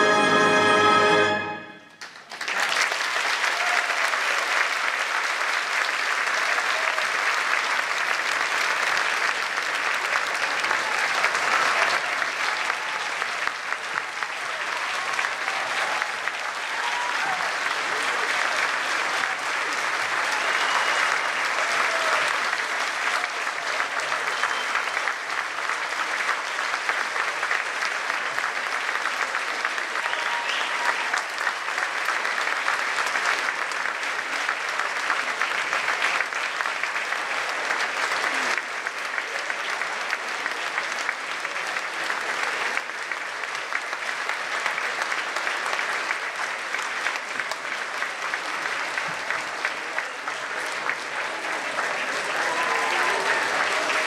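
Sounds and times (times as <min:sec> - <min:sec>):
audience applauding: 0:00.0 - 0:54.0.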